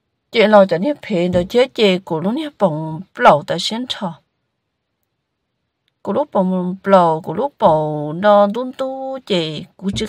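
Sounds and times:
person speaking: 0.4s - 3.8s, 6.1s - 10.0s.

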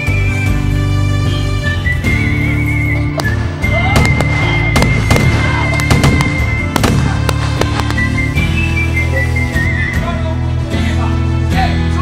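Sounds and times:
whistled western-style music: 0.0s - 12.0s.

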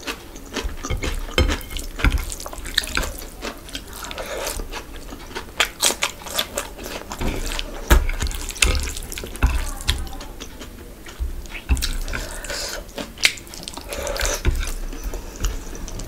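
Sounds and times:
chewing with mouth smacks: 0.0s - 16.0s.

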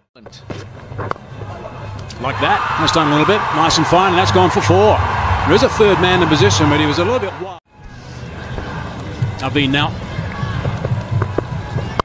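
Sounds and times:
crowd rumble: 0.7s - 12.0s.

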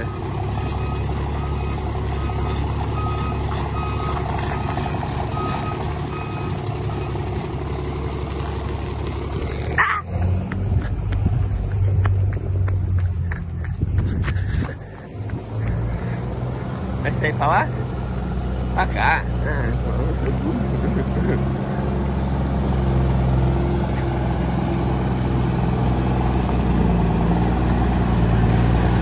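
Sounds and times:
diesel truck engine running: 0.0s - 29.0s.

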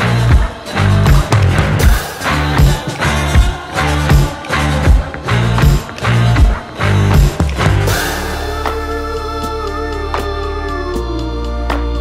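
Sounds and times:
bass line: 0.0s - 12.0s.

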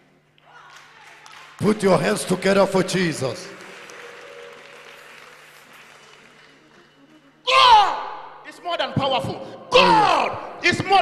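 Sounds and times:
congregation applauding: 0.5s - 7.4s.

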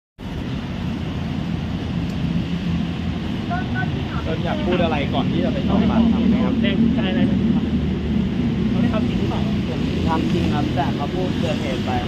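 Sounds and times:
traffic rumble: 0.2s - 12.0s
wind on microphone: 0.2s - 12.0s
indistinct voices: 3.4s - 12.0s.

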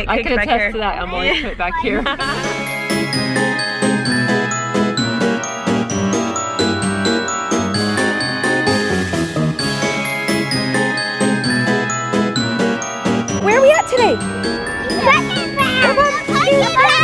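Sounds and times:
tinkling bell-like music: 2.2s - 17.0s
child's high voice: 15.0s - 17.0s.

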